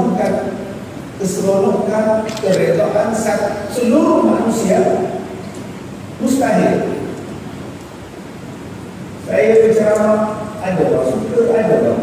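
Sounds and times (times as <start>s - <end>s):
sound system hiss: 0.0s - 12.0s.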